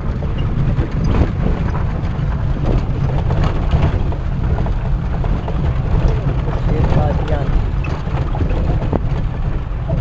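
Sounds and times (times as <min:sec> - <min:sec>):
engine and tyre rumble: 0:00.0 - 0:10.0
knocks and rattles: 0:00.0 - 0:10.0.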